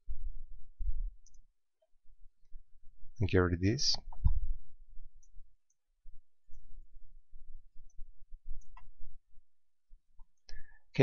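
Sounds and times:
computer clicks: 0:08.6 - 0:08.9.

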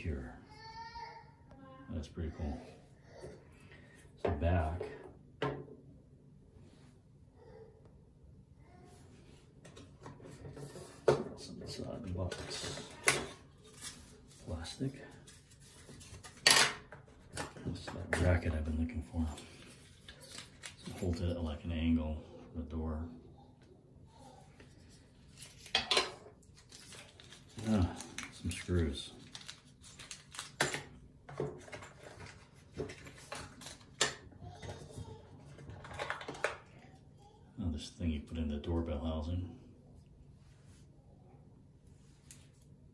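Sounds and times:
plastic bag crinkling: 0:26.4 - 0:30.9
plastic parts clattering against cardboard: 0:26.8 - 0:36.7.

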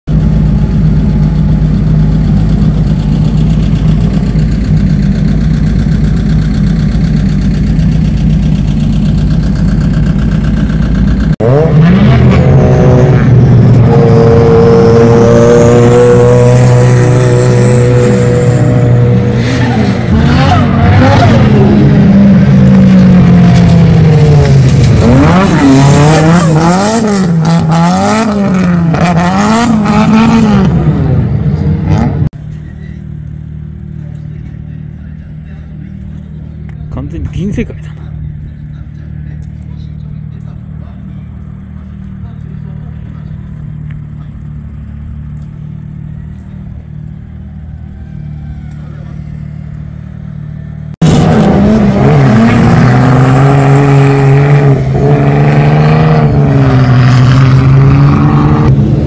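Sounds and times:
car engine idling: 0:00.1 - 0:11.6, 0:32.3 - 0:51.1
drift car engines revving: 0:00.2 - 0:59.0.

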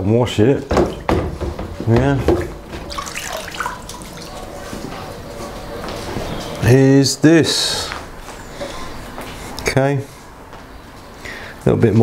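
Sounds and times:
water sloshing in a plastic tub: 0:02.0 - 0:04.6.

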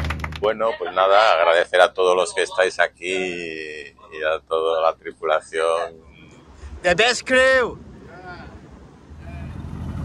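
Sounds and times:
low rumble: 0:02.9 - 0:10.0.

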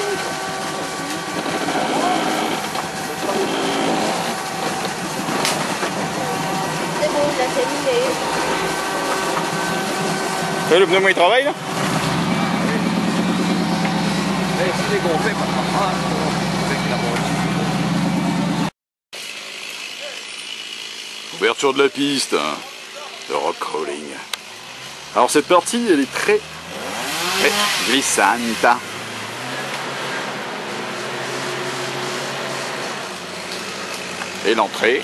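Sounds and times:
engine running at low speed: 0:00.0 - 0:35.0.

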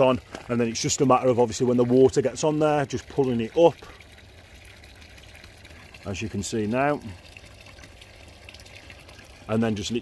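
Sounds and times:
rush of circulating water: 0:00.0 - 0:10.0.

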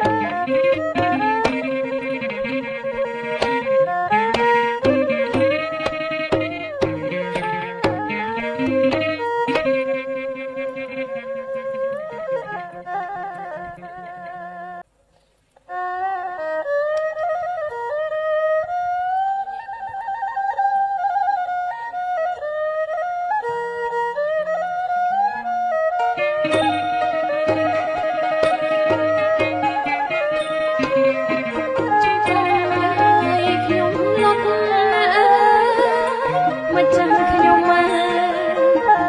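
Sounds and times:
traditional ensemble music: 0:00.0 - 0:14.9, 0:15.7 - 0:39.0.

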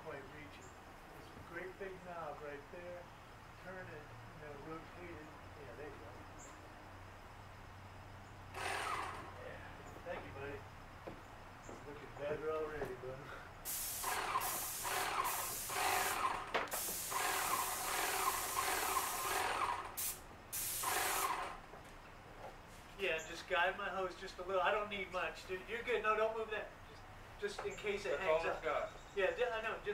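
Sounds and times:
pressure washer spraying wood: 0:13.6 - 0:21.6.

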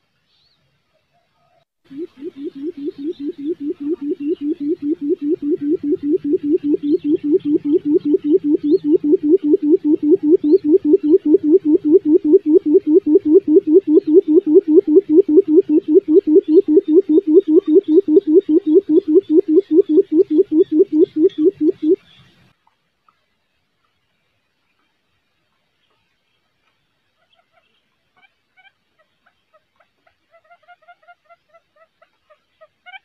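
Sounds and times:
quail drumming call: 0:01.9 - 0:22.1.

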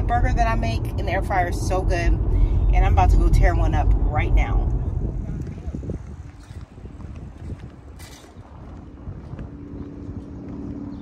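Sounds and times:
steady low hum: 0:00.0 - 0:11.0
wind rumbling on microphone: 0:00.0 - 0:11.0.

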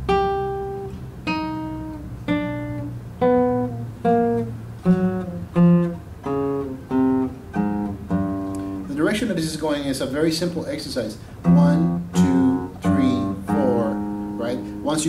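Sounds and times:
classical guitar plucked notes: 0:00.0 - 0:09.2, 0:11.2 - 0:15.0.

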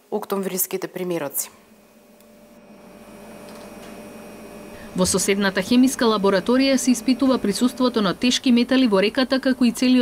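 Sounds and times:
machinery hum and hiss: 0:00.0 - 0:10.0.

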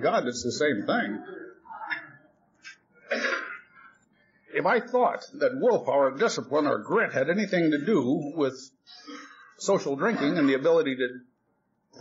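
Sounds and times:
person sneezing: 0:02.7 - 0:03.8.

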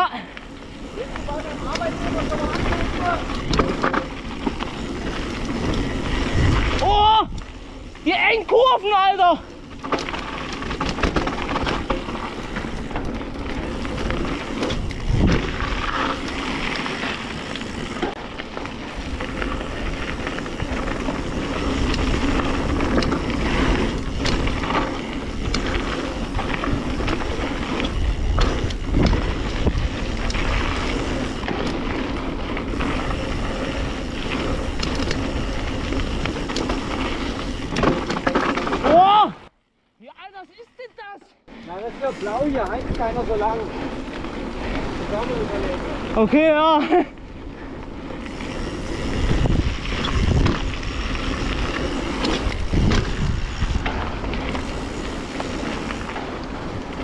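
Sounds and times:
bike tyres rolling on dirt: 0:00.0 - 0:57.0
wind noise: 0:00.6 - 0:39.0, 0:47.2 - 0:57.0.

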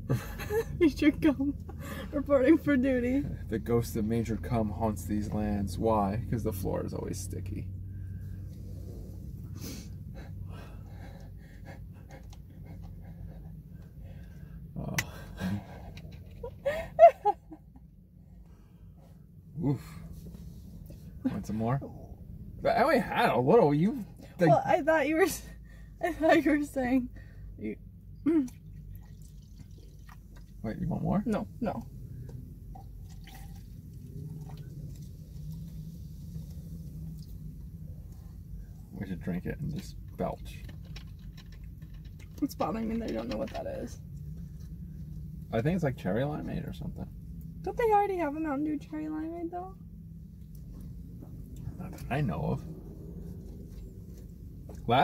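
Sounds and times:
low car cabin hum: 0:00.0 - 0:55.0
stifled laughter with gasping breaths: 0:15.3 - 0:17.9
sipping soda from a cup: 0:28.8 - 0:30.6, 0:32.8 - 0:37.4.

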